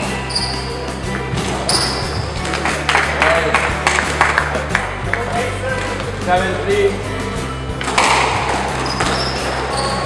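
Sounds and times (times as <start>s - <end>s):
shoe squeak: 0.2s - 2.4s, 8.7s - 10.0s
squash ball knocks: 7.8s - 9.2s.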